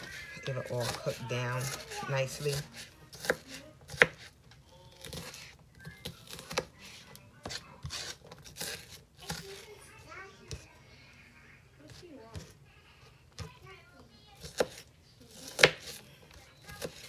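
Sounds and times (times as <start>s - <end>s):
knife chopping on cutting board: 0.6s - 4.4s, 5.0s - 9.6s, 14.4s - 16.0s, 16.7s - 17.0s.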